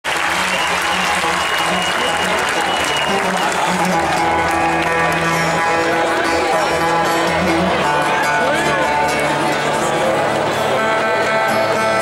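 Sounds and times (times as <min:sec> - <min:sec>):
audience applauding and cheering: 0:00.0 - 0:07.0
band playing low string notes: 0:00.1 - 0:12.0.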